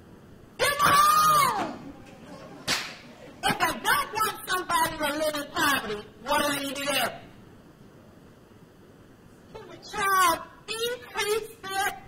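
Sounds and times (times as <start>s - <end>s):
woman speaking: 3.4s - 7.2s, 9.5s - 12.0s.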